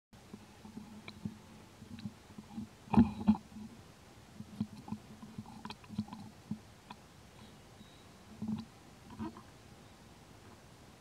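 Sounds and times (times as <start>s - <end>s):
monkey gulping and sucking: 4.4s - 7.0s, 8.4s - 9.5s.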